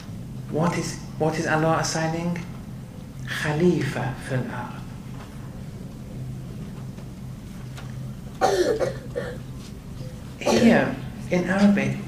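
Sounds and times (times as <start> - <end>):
faint low hum: 0.0 - 12.0
man coughing: 8.4 - 9.4, 10.4 - 11.0.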